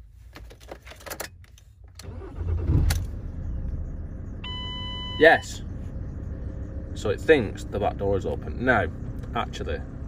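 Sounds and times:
ignition clicks: 0.4s - 3.8s
van engine starting and idling: 1.9s - 10.0s.

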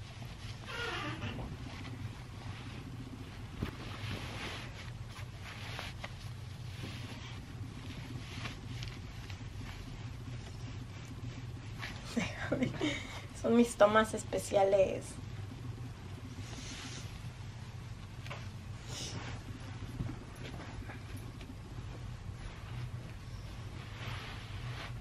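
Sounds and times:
denim rustling: 0.0s - 12.9s, 15.4s - 25.0s
low hum: 0.0s - 25.0s
feet shuffling on carpet: 1.5s - 12.2s, 16.2s - 25.0s.

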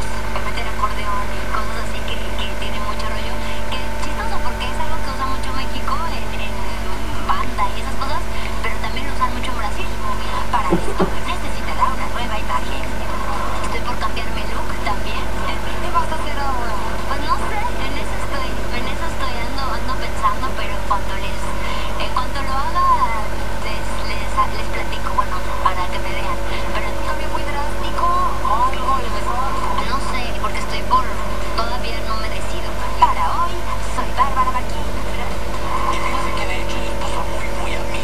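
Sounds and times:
faint speech: 0.0s - 38.0s
steady low hum: 0.0s - 38.0s
woman talking: 0.0s - 38.0s.

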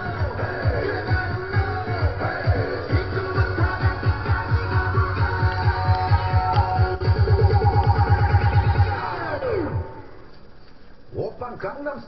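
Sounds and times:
pulsing synth bass: 0.0s - 10.0s
pop dance track: 0.0s - 10.2s.

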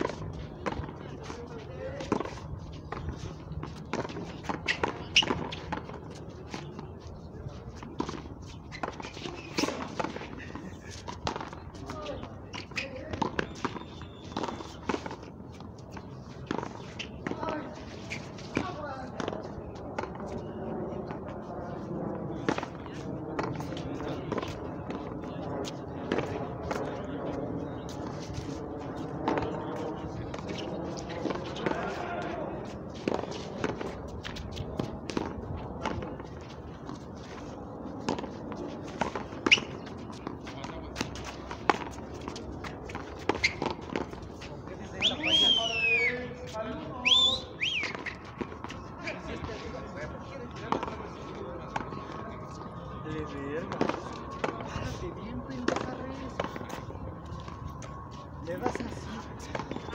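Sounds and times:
background chatter: 0.0s - 59.9s.

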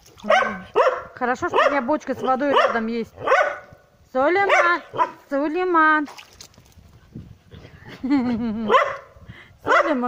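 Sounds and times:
quiet yard noise: 0.0s - 10.0s.

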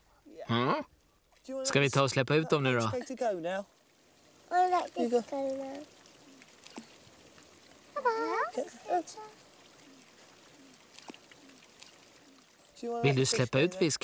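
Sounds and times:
faint water trickle: 0.0s - 14.0s
child calling: 4.5s - 5.9s, 7.9s - 9.4s.

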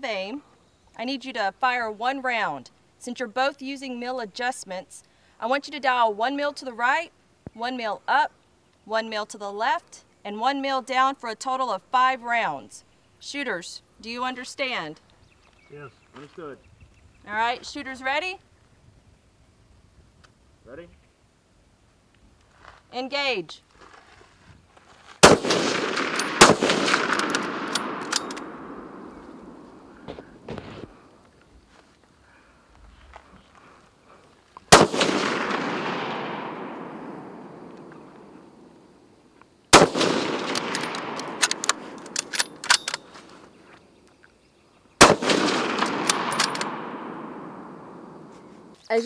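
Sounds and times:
rifle shots with rolling echo: 25.2s - 30.9s, 34.7s - 39.1s, 39.7s - 43.3s, 45.0s - 48.7s.

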